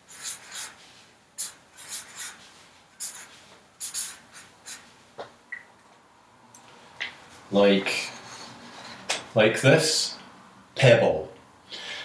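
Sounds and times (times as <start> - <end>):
pen writing on paper: 0.1 - 0.8, 1.4 - 2.4, 3.0 - 4.8.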